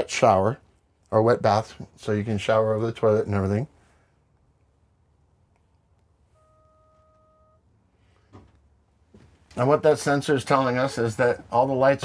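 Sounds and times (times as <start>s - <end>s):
electronic warning beep: 6.3s - 7.7s.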